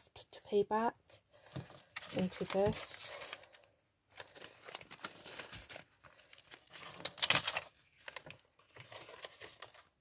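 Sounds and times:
banknotes and plastic crinkling: 1.3 - 10.0.

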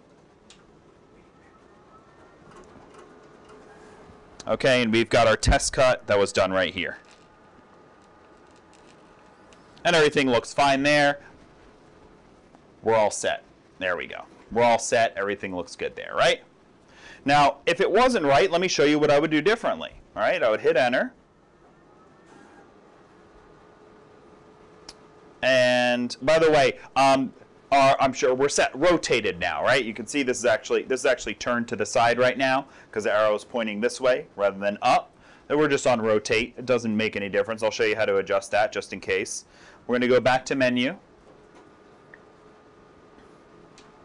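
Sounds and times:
thin steady tones: 0.0 - 16.2.

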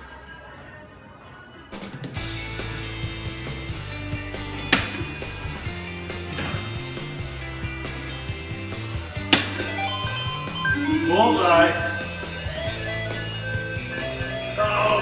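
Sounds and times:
background music: 0.0 - 15.0
darts striking electronic dartboard: 4.7 - 5.1, 9.3 - 9.7.

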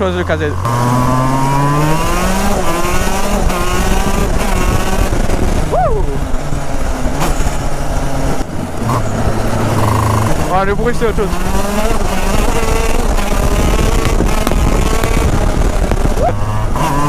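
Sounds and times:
kart engine revving through gears: 0.0 - 17.0.

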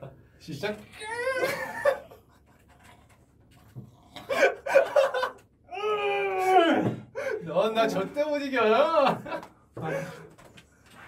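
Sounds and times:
men laughing: 1.4 - 2.4, 4.3 - 5.5, 8.8 - 10.4.

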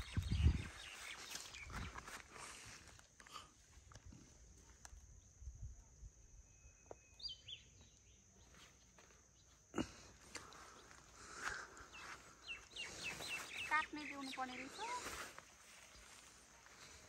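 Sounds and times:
bird chirping: 0.0 - 2.2, 6.4 - 9.6, 10.4 - 16.4
rustling of leafy greens: 0.6 - 3.1, 10.3 - 17.0.

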